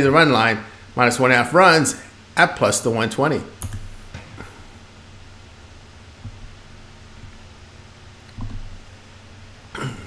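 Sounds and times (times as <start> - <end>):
faint room tone hiss: 0.0 - 10.0
soft low bumps: 6.1 - 7.6, 8.3 - 8.9.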